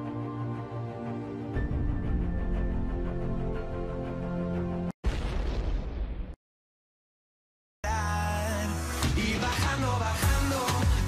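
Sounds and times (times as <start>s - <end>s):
boom sound effect: 5.0s - 6.4s.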